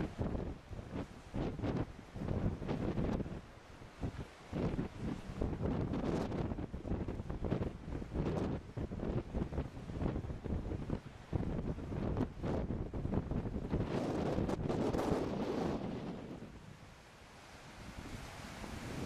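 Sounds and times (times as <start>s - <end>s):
wind buffeting microphone: 0.0s - 16.8s, 17.7s - 19.0s.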